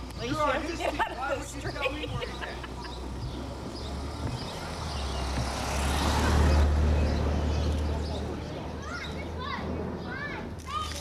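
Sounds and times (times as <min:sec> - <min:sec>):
motor vehicle passing: 0:00.0 - 0:11.0.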